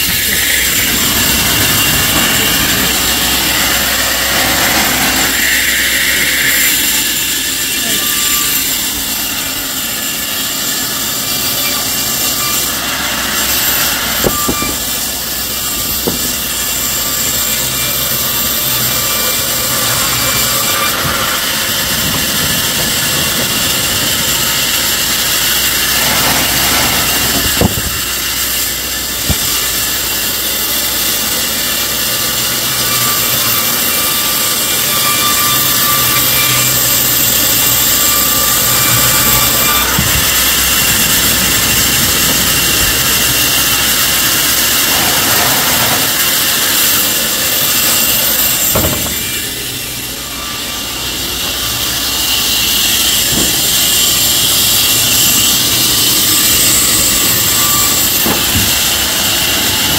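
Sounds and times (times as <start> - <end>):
band saw whirring: 0.0 - 59.9
log carriage knocks: 15.9 - 16.4.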